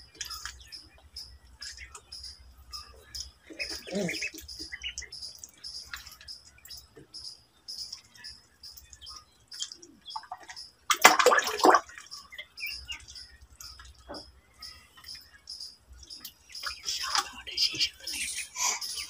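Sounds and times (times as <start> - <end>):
ducklings peeping: 0.0 - 19.0
water splashing: 8.8 - 14.2.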